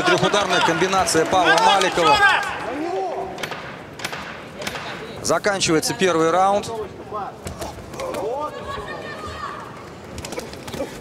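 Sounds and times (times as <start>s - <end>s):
arena crowd noise: 0.0s - 11.0s
sharp knocks: 3.4s - 5.0s.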